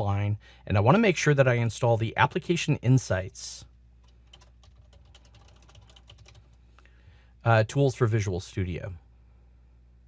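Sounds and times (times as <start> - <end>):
keyboard typing: 4.0 - 6.6.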